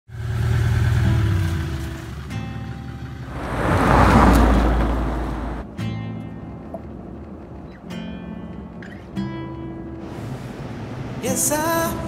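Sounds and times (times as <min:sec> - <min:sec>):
car engine running: 0:00.2 - 0:05.6
vehicle passing rush: 0:03.0 - 0:05.7.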